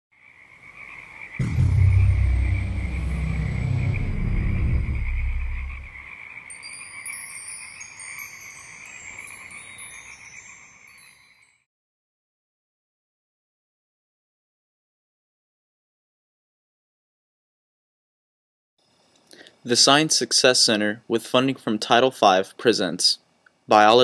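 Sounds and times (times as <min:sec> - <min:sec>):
frog calls: 0:00.2 - 0:01.4
deep low boom: 0:01.4 - 0:06.0
high falling swoop: 0:01.4 - 0:06.0
high twinkling chimes: 0:05.2 - 0:11.7.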